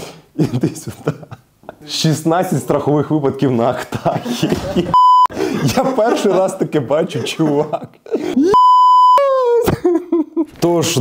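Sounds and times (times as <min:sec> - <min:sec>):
speech: 0:01.8 - 0:04.3, 0:05.6 - 0:08.0, 0:10.5 - 0:11.0
censor bleep tone: 0:05.0 - 0:05.3, 0:08.6 - 0:09.3.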